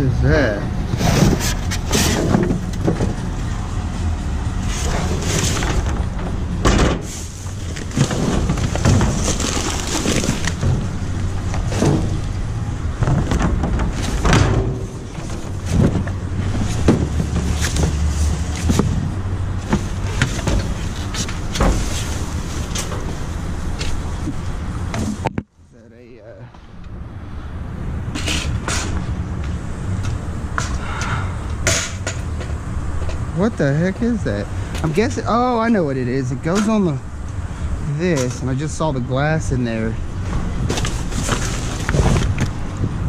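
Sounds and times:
steady low rumble: 0:00.0 - 0:43.0
thumps and clatters: 0:00.9 - 0:03.3, 0:04.7 - 0:12.4, 0:13.0 - 0:23.2, 0:40.3 - 0:42.6
cardboard and junk rustling and scraping: 0:00.9 - 0:03.6, 0:04.6 - 0:25.5, 0:40.2 - 0:43.0.

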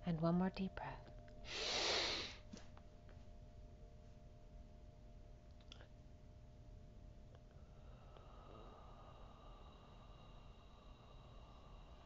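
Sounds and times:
woman taking deep breath: 0:01.5 - 0:02.4.

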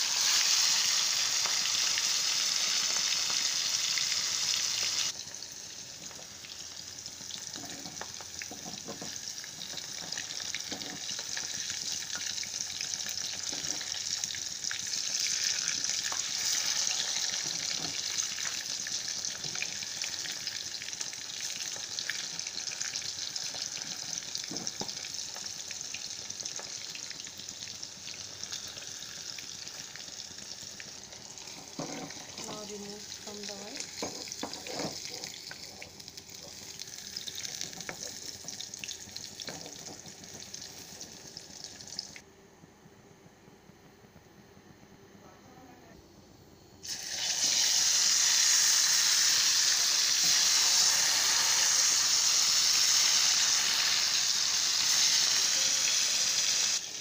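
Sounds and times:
fish deep-frying in oil: 0:00.0 - 0:42.2, 0:46.8 - 0:57.0.

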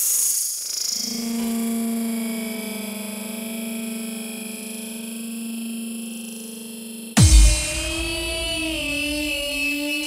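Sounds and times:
sustained synthesizer chord: 0:05.0 - 0:10.0.

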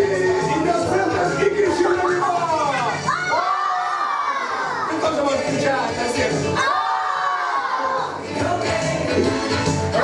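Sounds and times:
children yelling together: 0:03.0 - 0:05.0, 0:06.6 - 0:08.2.

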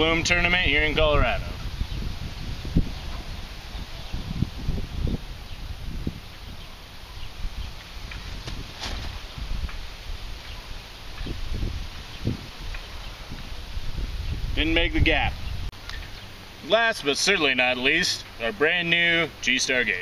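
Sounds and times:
wind buffeting microphone: 0:00.0 - 0:16.1.

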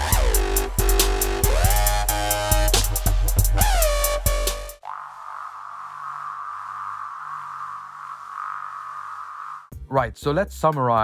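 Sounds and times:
synthesizer filtered noise: 0:03.6 - 0:09.7.

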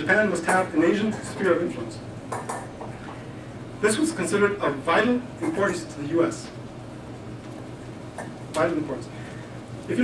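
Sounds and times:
people speaking: 0:00.0 - 0:02.0, 0:03.8 - 0:06.6, 0:08.6 - 0:09.1.

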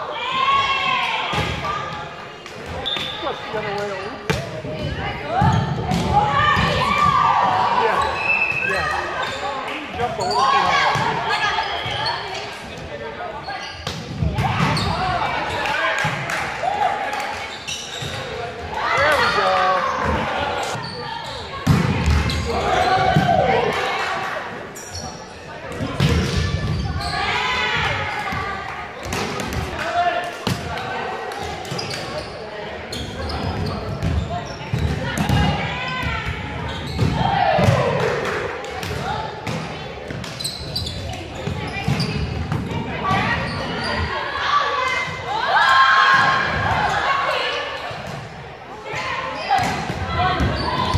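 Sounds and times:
volleyballs struck and bouncing: 0:25.7 - 0:26.7, 0:28.1 - 0:32.2, 0:49.0 - 0:50.9.

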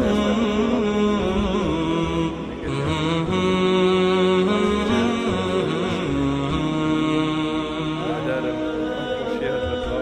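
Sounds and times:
slow melody of held notes: 0:00.0 - 0:10.0.

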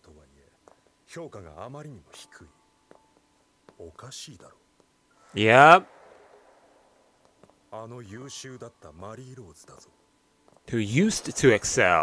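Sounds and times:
faint steady tone: 0:00.0 - 0:12.0.

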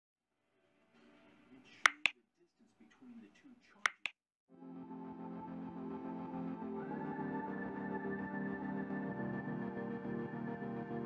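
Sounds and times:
mouse clicks: 0:01.8 - 0:02.1, 0:03.9 - 0:04.1.

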